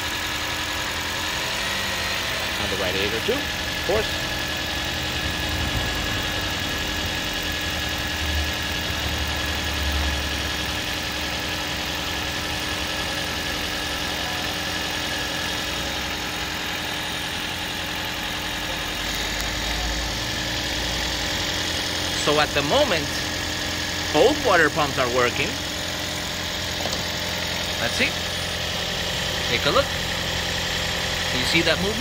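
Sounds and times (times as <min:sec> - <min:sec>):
car engine idling: 0:00.0 - 0:32.0
thin steady whine: 0:00.0 - 0:32.0.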